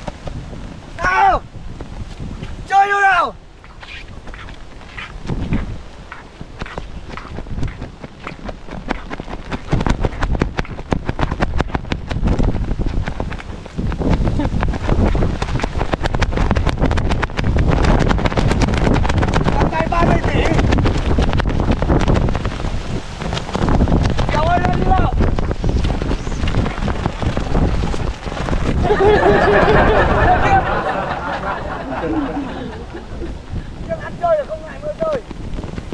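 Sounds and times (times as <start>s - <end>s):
gusty wind buffeting microphone: 0.0s - 35.9s.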